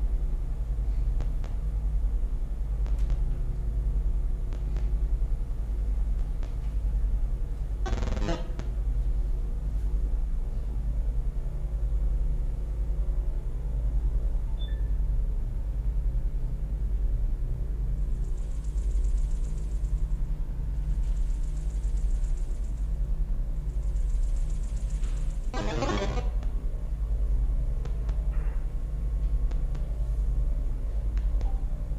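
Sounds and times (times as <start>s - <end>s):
short rasping noise: 25.6s - 26.4s.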